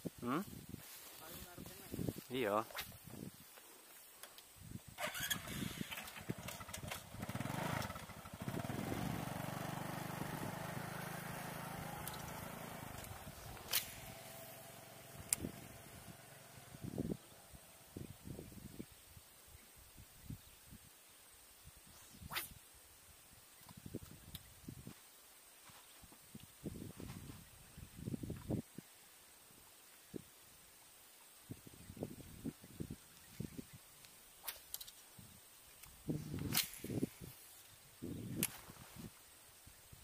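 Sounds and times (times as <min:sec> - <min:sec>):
engine running steadily: 0:05.3 - 0:17.0
sharp clicks: 0:12.0 - 0:14.3.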